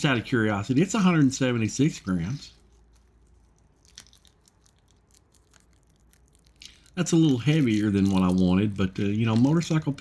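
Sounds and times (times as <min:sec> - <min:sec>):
plastic bag crinkling: 0:01.8 - 0:10.0.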